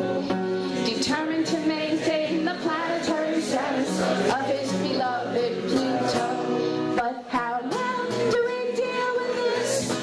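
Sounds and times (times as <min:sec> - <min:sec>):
woman singing folk song: 0:00.0 - 0:10.0.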